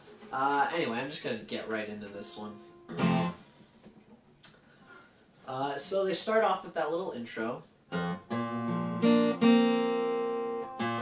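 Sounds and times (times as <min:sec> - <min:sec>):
acoustic guitar chord strummed: 0:02.3 - 0:03.5, 0:07.9 - 0:11.0.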